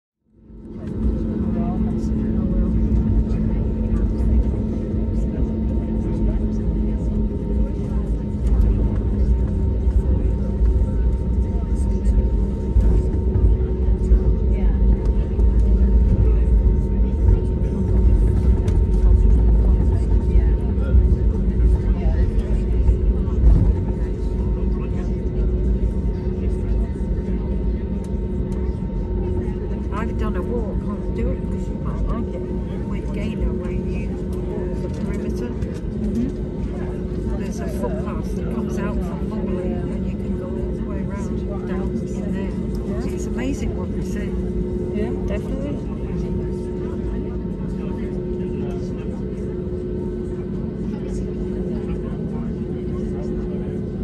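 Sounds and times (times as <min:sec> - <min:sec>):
low cabin rumble: 0:00.3 - 0:54.0
passengers talking: 0:00.4 - 0:54.0.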